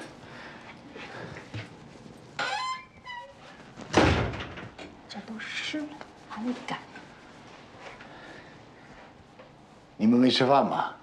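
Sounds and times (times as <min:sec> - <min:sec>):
door shutting with thud: 0:03.9 - 0:04.8.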